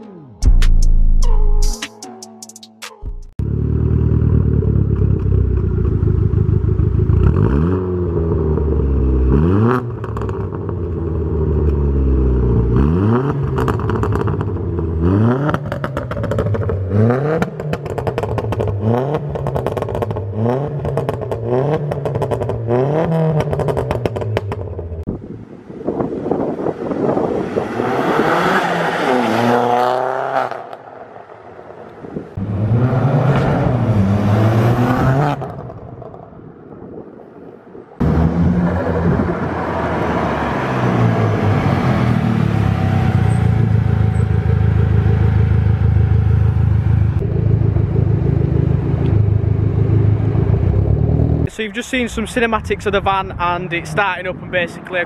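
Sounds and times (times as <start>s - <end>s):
turbocharged engine revving: 3.4s - 25.1s, 26.3s - 30.8s, 32.4s - 35.9s, 38.0s - 51.5s
exhaust crackles and pops: 13.5s - 25.1s, 35.4s - 39.6s.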